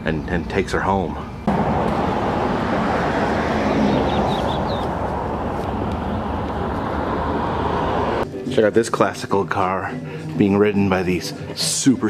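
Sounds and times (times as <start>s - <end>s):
road traffic noise: 1.3s - 8.2s.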